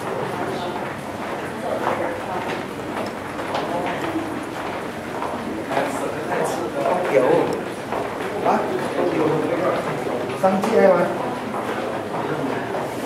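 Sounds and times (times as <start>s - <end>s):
low chatter: 0.0s - 13.0s
footsteps on hard floor: 0.8s - 13.0s.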